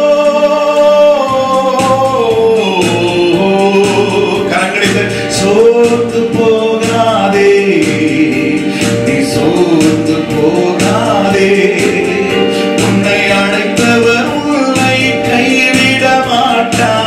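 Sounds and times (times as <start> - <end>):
instrumental backing with beat: 0.0 - 17.0
man singing into microphone: 0.0 - 17.0.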